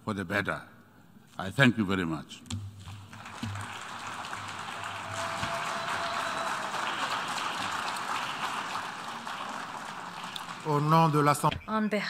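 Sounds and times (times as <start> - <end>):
audience applauding: 2.9 - 11.5.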